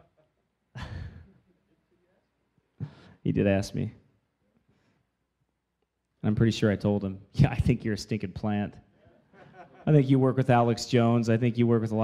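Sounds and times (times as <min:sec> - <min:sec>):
man exhaling stifled laugh: 0:00.8 - 0:01.4.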